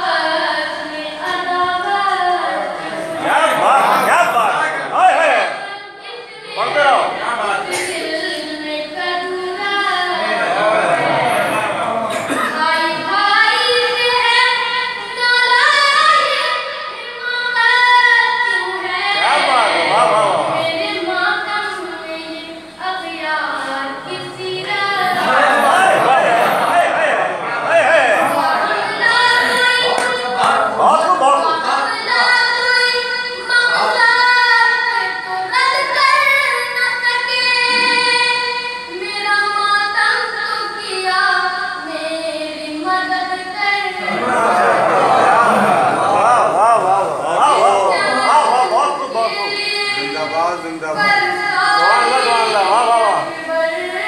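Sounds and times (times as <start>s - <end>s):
boy singing mourning lament: 0.0s - 54.0s
boy singing solo: 46.8s - 54.0s.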